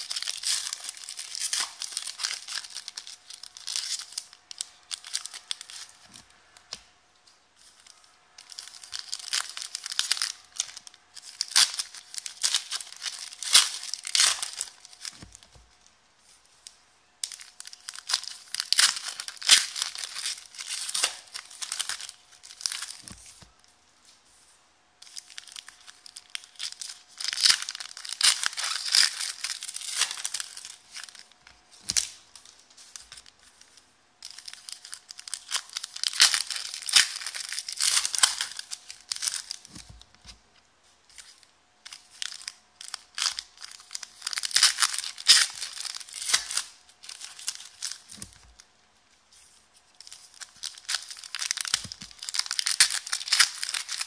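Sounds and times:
foil wrappers tearing and crinkling: 0:00.0 - 0:06.3, 0:07.6 - 0:15.6, 0:17.2 - 0:23.4, 0:25.0 - 0:40.4, 0:41.1 - 0:48.6, 0:49.9 - 0:54.0.

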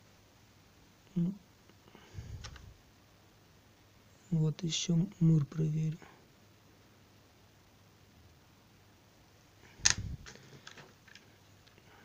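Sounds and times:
camera handling click and thump: 0:09.8 - 0:10.2.

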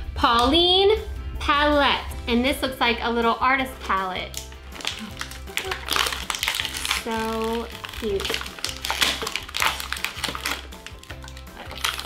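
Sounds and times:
background music with bass: 0:00.0 - 0:12.0
plastic packaging crackling: 0:04.3 - 0:12.0.

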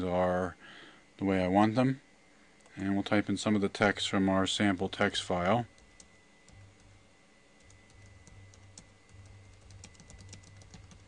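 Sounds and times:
keyboard typing: 0:07.6 - 0:11.0.

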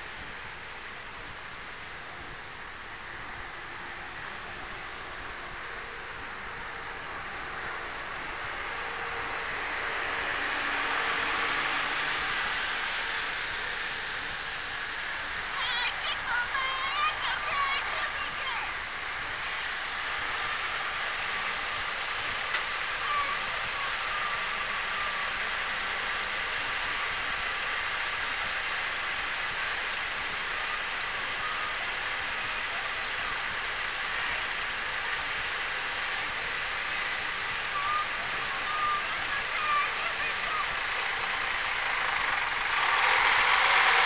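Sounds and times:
outdoor background hiss: 0:00.0 - 0:44.0.

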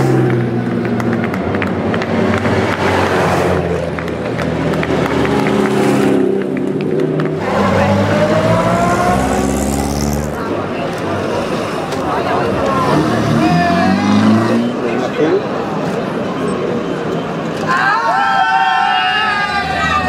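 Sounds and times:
car engines passing: 0:00.0 - 0:20.0
spectators' voices: 0:00.0 - 0:20.0.

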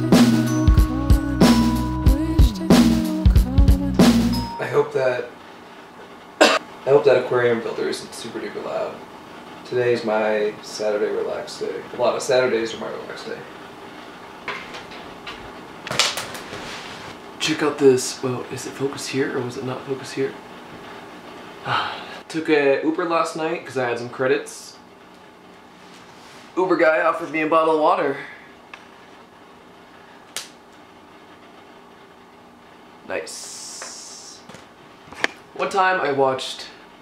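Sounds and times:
aquarium filter hum: 0:00.0 - 0:37.0.

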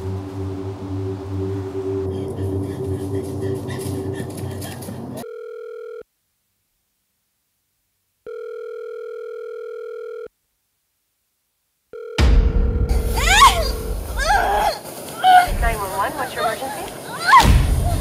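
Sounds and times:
dense trailer score: 0:00.0 - 0:05.2, 0:12.2 - 0:14.6
telephone ringing tone: 0:05.2 - 0:06.0, 0:08.2 - 0:10.3, 0:11.9 - 0:12.8.

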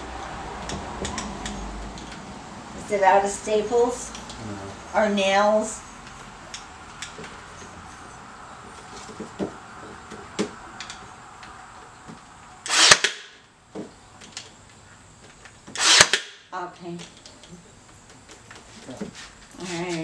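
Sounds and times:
nail gun firing: 0:12.7 - 0:13.3, 0:15.7 - 0:16.4.

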